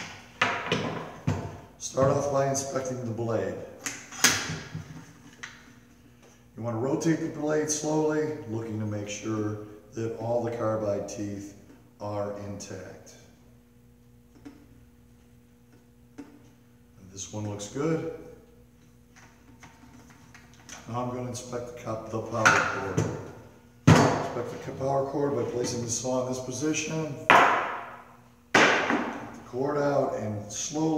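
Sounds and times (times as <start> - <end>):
low electrical hum: 0.0 - 30.9.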